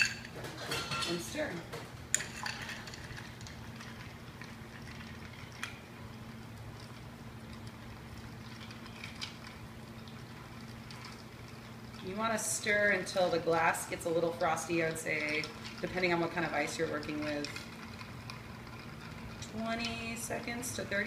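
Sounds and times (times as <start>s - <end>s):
steady low hum: 0.0s - 21.0s
spoon stirring ice in glass: 2.1s - 5.8s, 6.8s - 10.2s, 10.8s - 21.0s.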